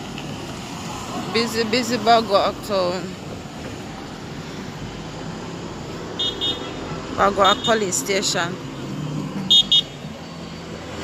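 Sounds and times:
street traffic noise: 0.0 - 11.0
car horn toots: 9.5 - 10.0.

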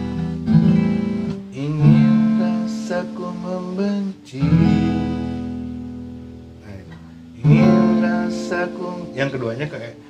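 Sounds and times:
acoustic guitar chords strummed: 0.0 - 10.0.

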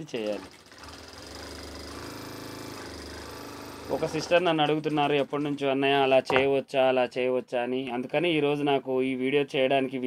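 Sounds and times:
sewing machine stitching: 0.0 - 5.6.

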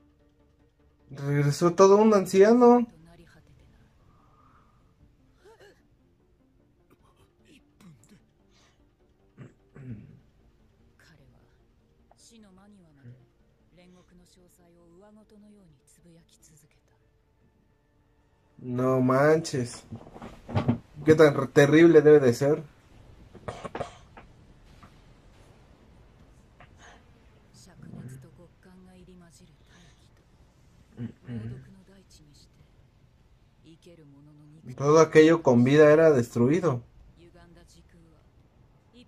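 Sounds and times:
man coughing quietly: 23.4 - 24.2
soft vocal sounds: 29.4 - 31.9.

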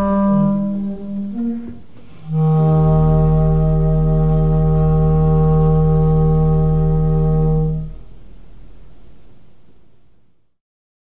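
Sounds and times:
clarinet and pipe organ note: 0.0 - 8.1.

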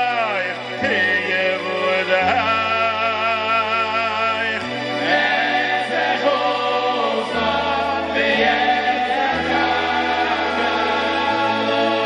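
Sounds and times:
choral singing: 0.0 - 12.0.

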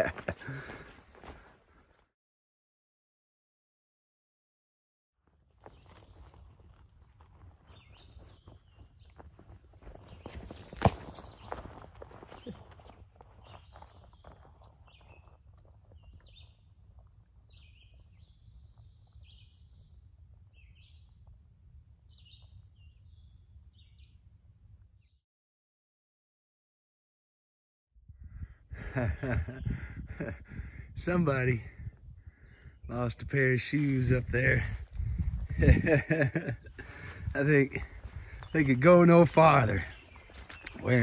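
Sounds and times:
small birds chirping: 5.2 - 25.2, 28.1 - 41.0.

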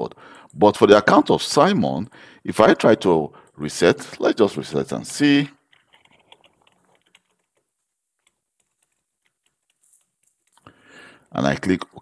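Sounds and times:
faint keyboard keystrokes: 5.7 - 10.7.

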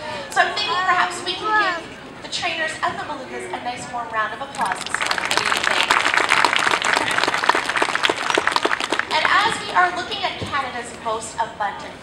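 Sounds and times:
audience applauding: 4.6 - 9.9.

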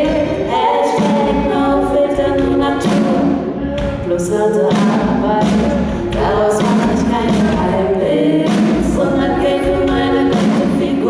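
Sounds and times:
female vocal group singing in harmony: 0.0 - 11.0
deep pulsing bass: 1.2 - 2.8.

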